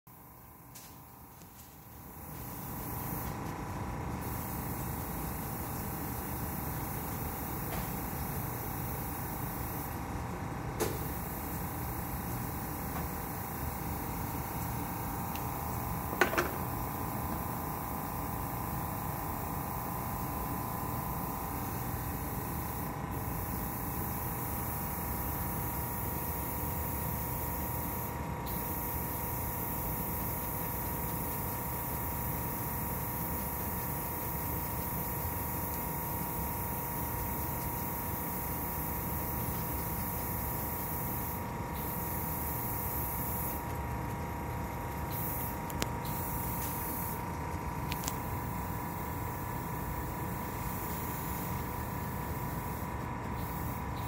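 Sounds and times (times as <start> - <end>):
faint steady whine: 0.1 - 54.0
machinery hiss and hum: 0.1 - 54.0.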